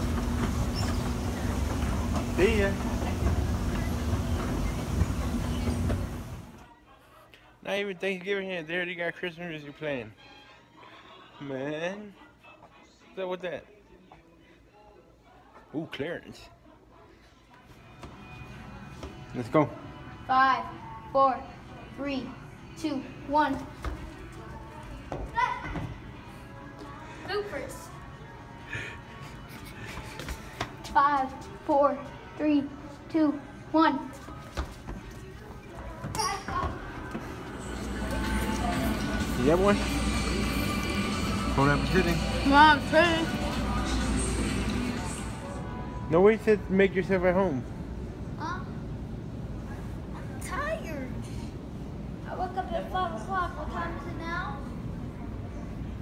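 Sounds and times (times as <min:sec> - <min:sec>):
moving steps rumbling: 0:00.0 - 0:06.6.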